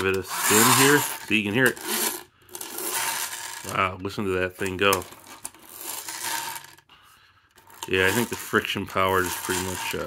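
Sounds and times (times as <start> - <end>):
toy friction motor whirring: 0.0 - 3.9, 5.0 - 6.8, 7.6 - 10.0.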